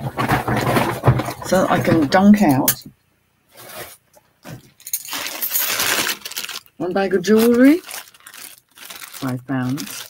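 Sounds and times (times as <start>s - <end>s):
jewellery clinking and jingling: 4.8s - 6.6s
plastic bag crinkling: 4.9s - 10.0s.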